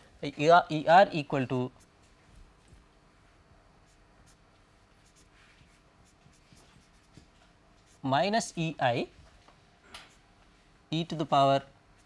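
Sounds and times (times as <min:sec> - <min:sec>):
marker scratching on whiteboard: 0:03.8 - 0:08.1.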